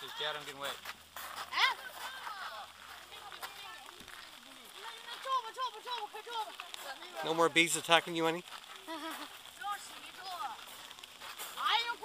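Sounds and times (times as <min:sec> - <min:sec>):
people talking indistinctly: 0:00.0 - 0:12.0
small ticks: 0:02.7 - 0:12.0.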